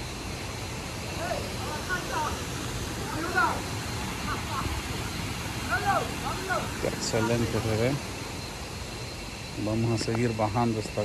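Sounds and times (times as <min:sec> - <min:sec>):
steady background hiss: 0:00.0 - 0:11.0
distant voices calling out: 0:00.9 - 0:08.4.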